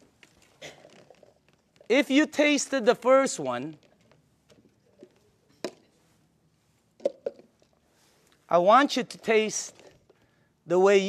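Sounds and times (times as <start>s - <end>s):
small handling noises: 0.0s - 2.0s, 3.4s - 10.6s.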